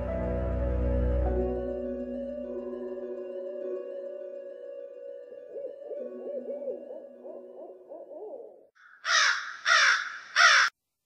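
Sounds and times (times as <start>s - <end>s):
eerie drone music: 0.0s - 7.7s
harsh caws: 8.8s - 10.8s.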